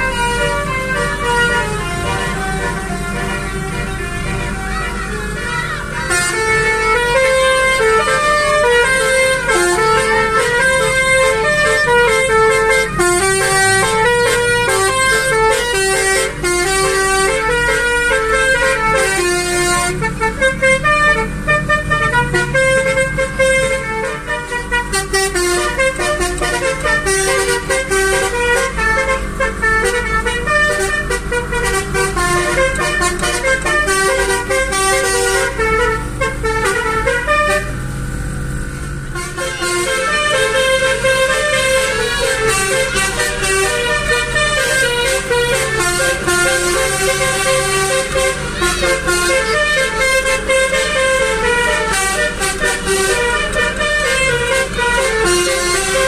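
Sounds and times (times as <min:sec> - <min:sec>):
musical air horn playing tune: 0:00.0 - 0:37.9, 0:39.1 - 0:56.0
low rumble of car and traffic: 0:00.0 - 0:56.0.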